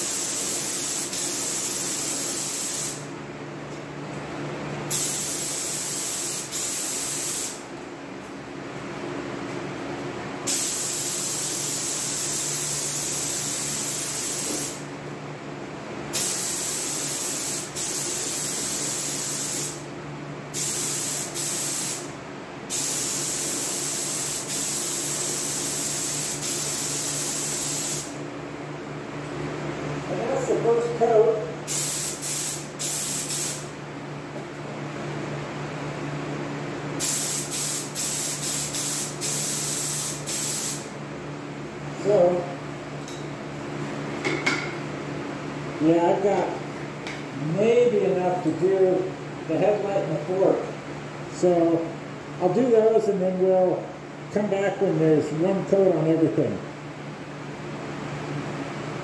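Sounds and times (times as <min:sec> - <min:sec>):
paint spray gun hissing: 0:00.0 - 0:03.0, 0:04.9 - 0:07.6, 0:10.5 - 0:14.8, 0:16.2 - 0:19.8, 0:20.6 - 0:22.1, 0:22.7 - 0:28.2, 0:31.7 - 0:33.7, 0:37.0 - 0:40.9
steady low hum: 0:00.0 - 0:59.0.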